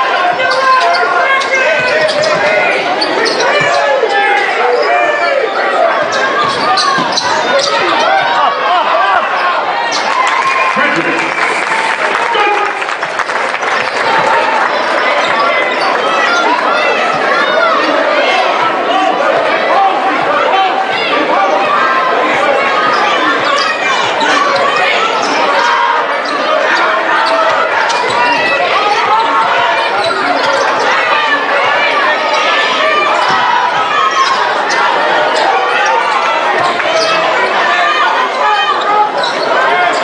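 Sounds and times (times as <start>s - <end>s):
echoing crowd chatter: 0.0s - 40.0s.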